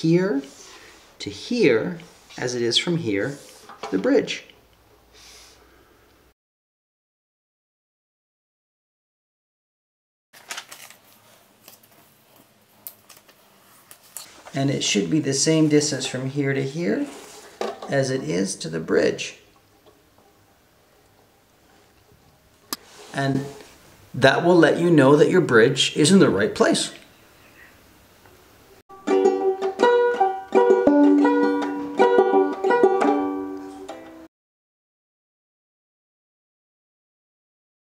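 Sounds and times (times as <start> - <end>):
paper rustling and crinkling: 10.4 - 14.6
banjo ukulele strumming: 28.9 - 34.3.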